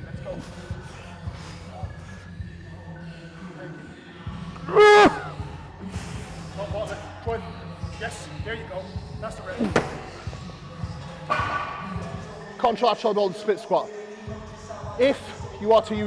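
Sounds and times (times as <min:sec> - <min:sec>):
background music with steady beat: 0:00.0 - 0:16.0
man shouting with effort: 0:04.7 - 0:05.2.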